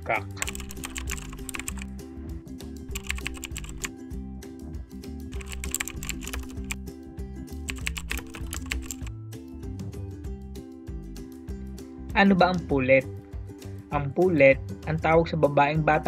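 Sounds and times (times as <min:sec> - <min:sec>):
background music: 0:00.0 - 0:16.0
keyboard typing clicks: 0:00.4 - 0:01.9, 0:02.9 - 0:03.9, 0:05.4 - 0:06.8, 0:07.7 - 0:09.1.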